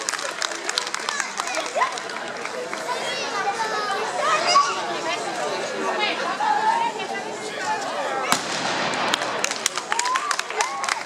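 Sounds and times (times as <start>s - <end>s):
crowd voices: 0.0s - 11.0s
firecracker bangs: 8.3s - 9.8s.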